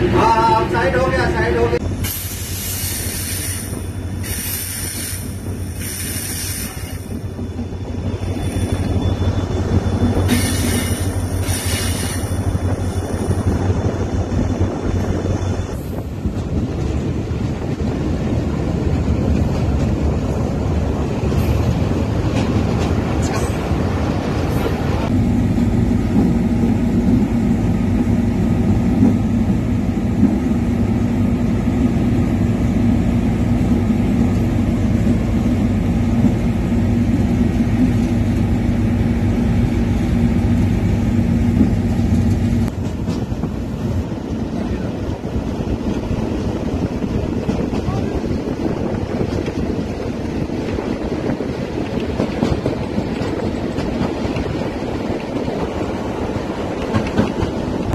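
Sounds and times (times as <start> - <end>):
train rumble: 0.0 - 57.9
wind noise: 1.8 - 25.2, 41.4 - 57.9.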